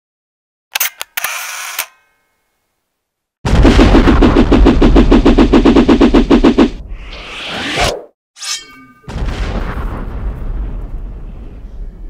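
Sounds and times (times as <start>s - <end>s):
rapid rattling pulses: 3.5s - 6.8s
deep rumble: 3.5s - 7.2s.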